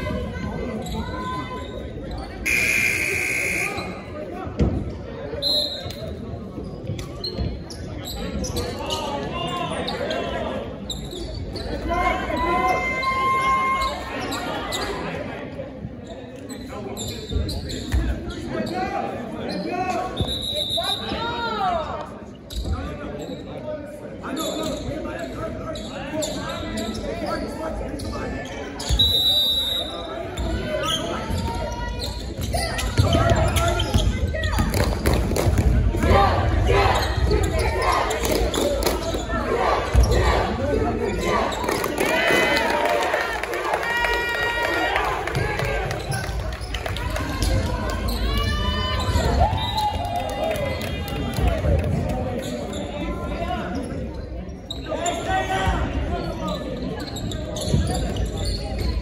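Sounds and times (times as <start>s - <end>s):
voices in echoing gym: 0.0s - 59.0s
referee's whistle: 2.4s - 4.1s, 5.4s - 6.0s, 20.1s - 21.2s, 28.8s - 30.1s.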